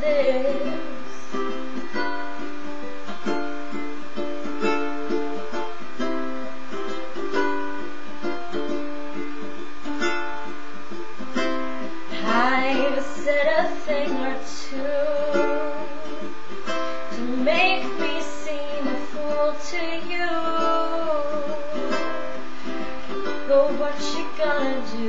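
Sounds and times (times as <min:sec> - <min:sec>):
woman singing: 0:00.0 - 0:01.5, 0:12.1 - 0:22.4, 0:23.2 - 0:25.0
ukulele strumming: 0:00.0 - 0:25.0.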